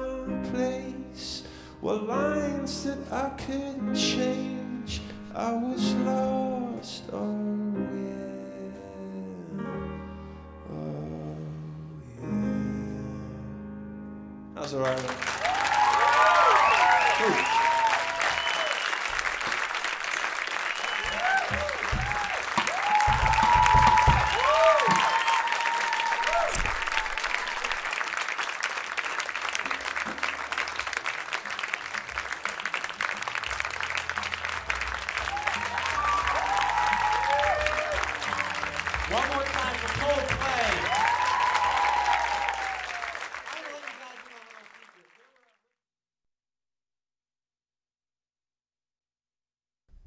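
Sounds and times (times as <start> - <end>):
audience applauding: 14.6 - 45.7
whoops and cheers: 15.3 - 19.0, 20.6 - 27.9, 35.1 - 39.2, 40.0 - 43.3.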